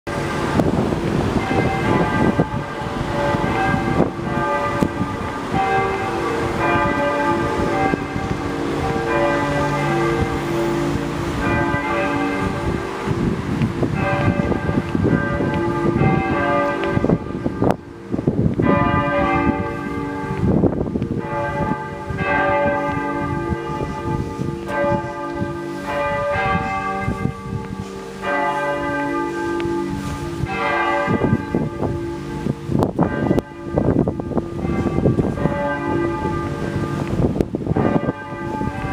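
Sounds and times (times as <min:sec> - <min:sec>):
church bells ringing in a peal: 0:00.1 - 0:38.9.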